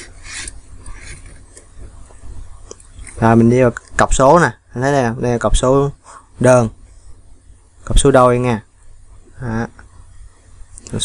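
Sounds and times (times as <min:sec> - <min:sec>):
scrape of handling: 0:00.0 - 0:01.9
light rubbing: 0:00.0 - 0:03.4.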